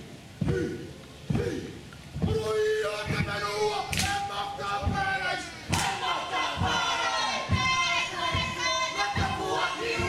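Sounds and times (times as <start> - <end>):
men shouting a chant in unison: 0.4 - 10.0
dance stomping thuds: 2.2 - 2.4, 4.8 - 10.0.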